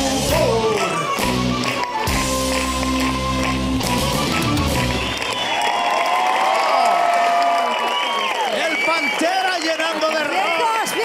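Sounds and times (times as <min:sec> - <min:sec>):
audience cheering and yelling: 0:00.0 - 0:11.0.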